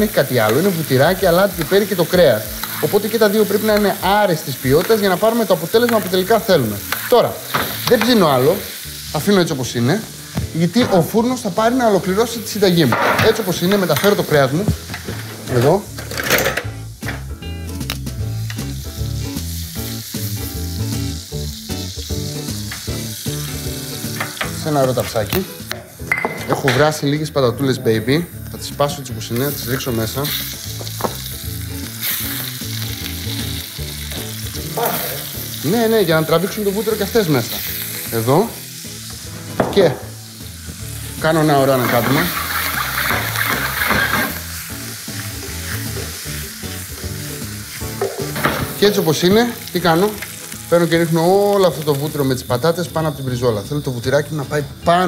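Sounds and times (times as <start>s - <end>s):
background music with bass: 0.0s - 55.0s
butter sizzling in frying pan: 0.0s - 55.0s.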